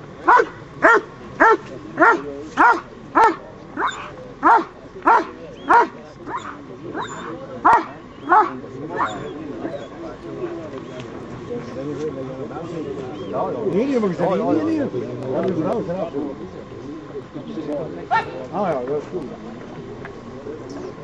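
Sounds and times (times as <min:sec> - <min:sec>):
dog barking: 0:00.2 - 0:09.2, 0:18.1 - 0:18.4.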